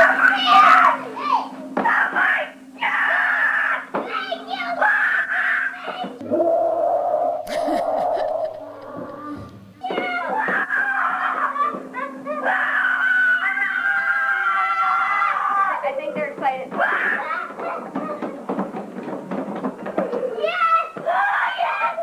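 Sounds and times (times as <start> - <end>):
young children screaming: 0.0 - 15.9, 16.7 - 18.4, 20.0 - 22.0.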